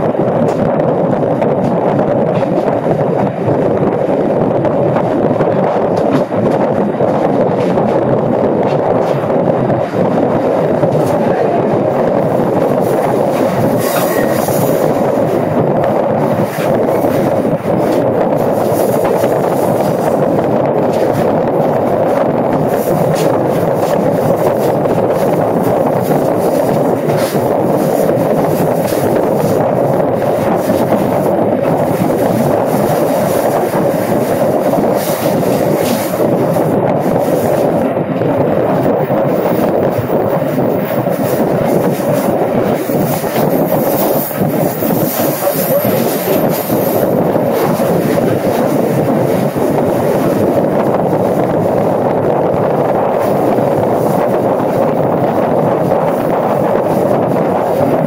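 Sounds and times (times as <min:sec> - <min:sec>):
train wheels rumbling on rails: 0:00.0 - 0:58.0.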